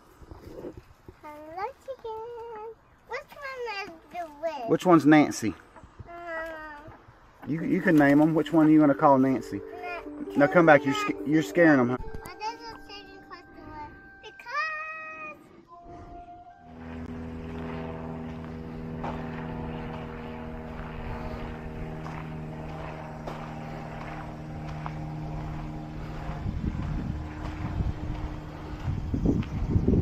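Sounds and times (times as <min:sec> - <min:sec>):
child's voice: 0:01.2 - 0:04.7, 0:06.0 - 0:07.0, 0:09.6 - 0:15.5
motor hum with held tones: 0:07.1 - 0:30.0.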